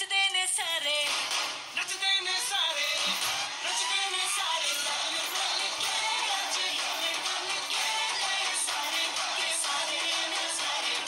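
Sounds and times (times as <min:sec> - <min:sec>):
person singing over backing music: 0:01.9 - 0:11.0.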